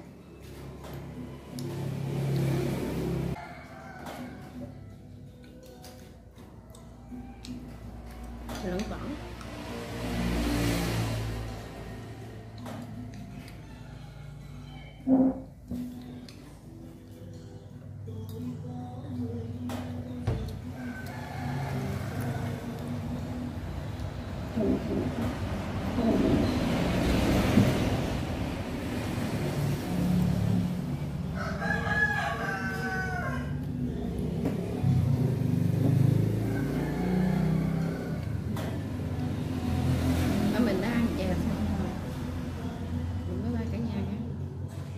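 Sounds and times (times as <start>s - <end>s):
rooster crowing: 2.6s - 5.0s, 13.4s - 15.5s, 20.7s - 23.4s, 31.2s - 34.0s, 35.9s - 38.8s
person humming while chewing: 4.9s - 8.2s, 12.5s - 25.2s.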